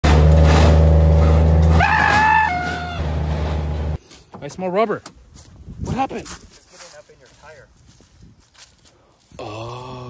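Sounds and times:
vehicle engine drone: 0:00.0 - 0:04.0.

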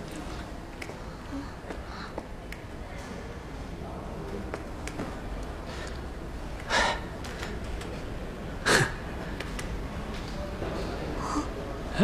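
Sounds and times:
low steady background noise: 0:00.0 - 0:12.0.

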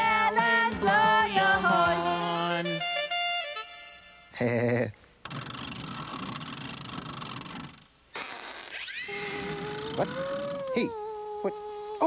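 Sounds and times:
cartoon buzzing fly hum: 0:05.2 - 0:12.0.

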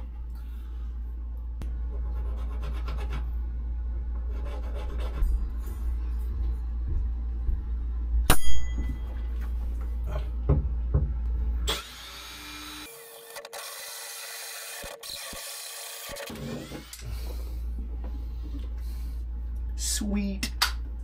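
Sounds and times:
drill whining: 0:11.7 - 0:17.0.

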